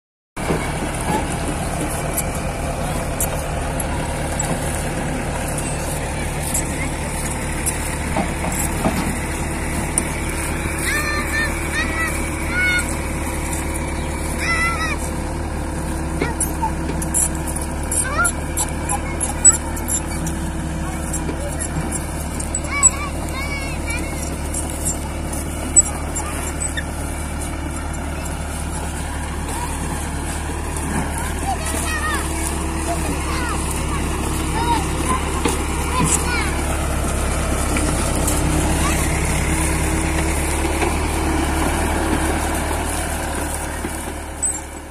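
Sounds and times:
diesel engines running: 0.4 - 44.9.

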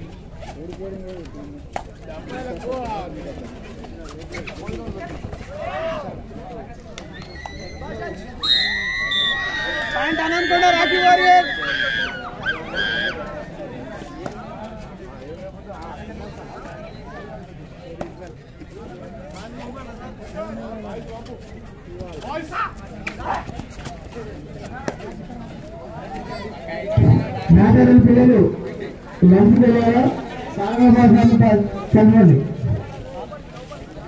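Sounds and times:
crowd talking and calling out: 0.0 - 34.0
faint high whistle tone: 8.4 - 9.7.

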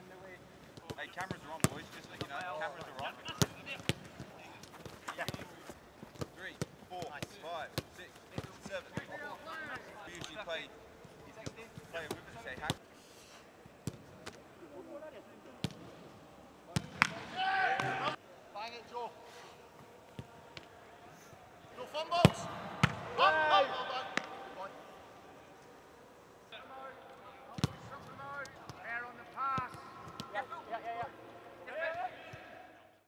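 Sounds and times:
players shouting: 16.9 - 18.2, 21.7 - 25.9
player shouting: 17.3 - 18.2, 23.1 - 24.1.

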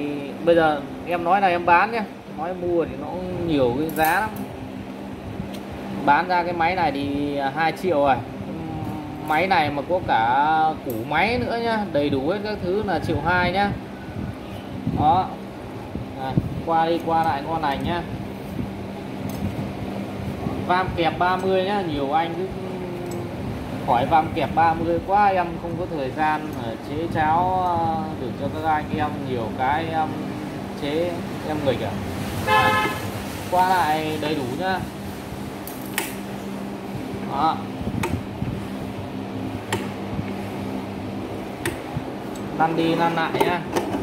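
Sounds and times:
low machine hum: 0.0 - 44.0.

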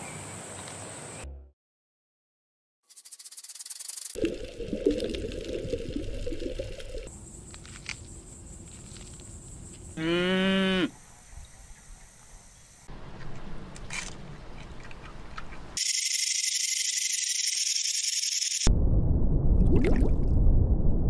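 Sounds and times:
cow mooing: 10.0 - 11.0.

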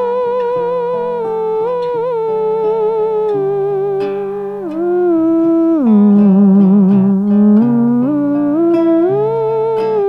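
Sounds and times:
acoustic guitar picking chords: 0.0 - 10.0
theremin melody with vibrato: 0.0 - 10.0.

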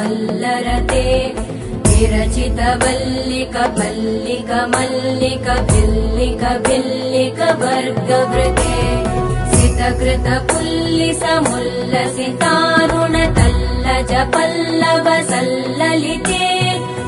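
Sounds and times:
devotional music melody: 0.1 - 17.0
deep drum beats: 0.7 - 7.0, 8.4 - 11.7, 12.8 - 14.4.

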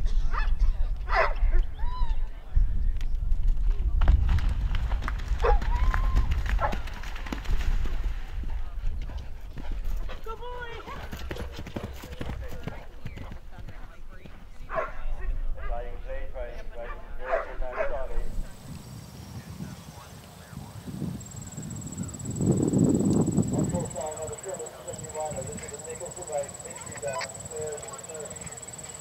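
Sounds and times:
horse hooves galloping: 3.2 - 14.8, 18.3 - 29.0
people's voices: 23.0 - 29.0.

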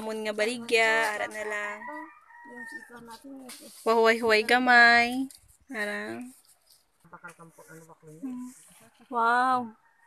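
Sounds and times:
rooster crowing: 1.5 - 3.1.

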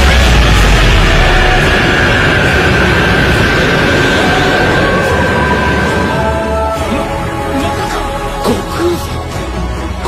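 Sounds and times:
dramatic music: 0.0 - 10.0.

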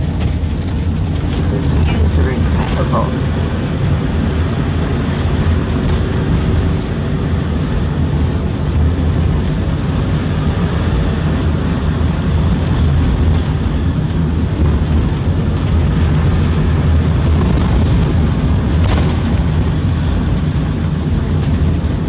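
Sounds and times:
car engine and tyre noise: 0.0 - 22.0.

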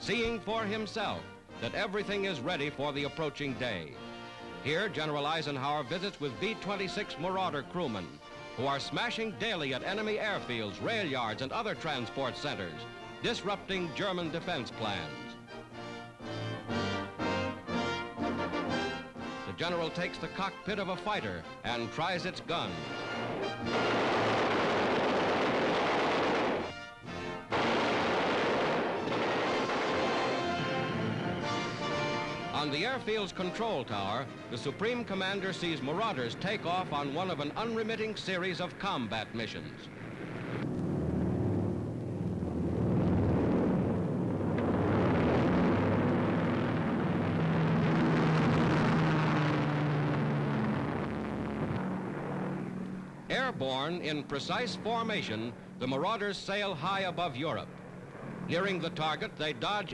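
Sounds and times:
bomber planes taking off roaring: 0.0 - 59.9
orchestral music: 0.4 - 24.9, 26.6 - 28.0, 28.7 - 37.9
machine guns firing: 23.6 - 26.8, 27.5 - 30.8.

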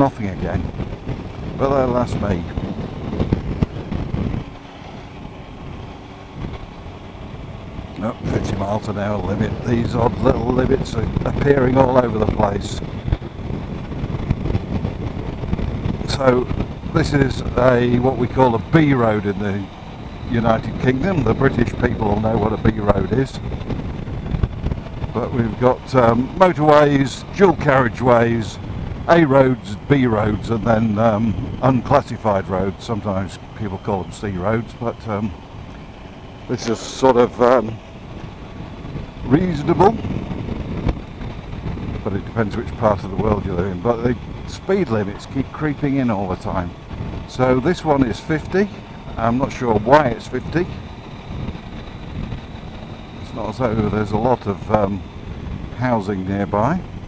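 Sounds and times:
motorcycle engine running: 0.0 - 57.0
wind rushing over microphone: 0.0 - 57.0.

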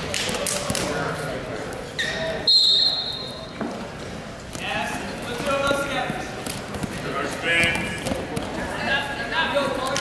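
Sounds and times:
sharp whistle blast: 2.5 - 3.4.

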